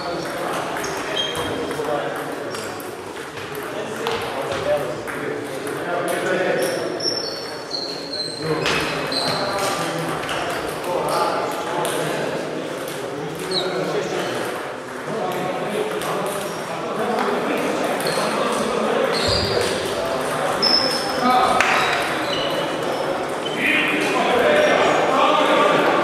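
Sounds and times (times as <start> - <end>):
murmur of voices: 0.0 - 26.0
table tennis balls clicking: 0.1 - 4.3, 9.6 - 18.9, 19.6 - 24.1.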